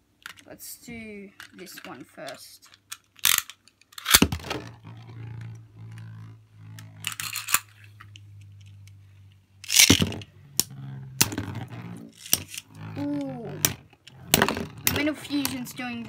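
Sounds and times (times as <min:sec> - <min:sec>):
spinning top humming: 0:04.3 - 0:16.0
spinning tops clicking together: 0:06.8 - 0:08.8.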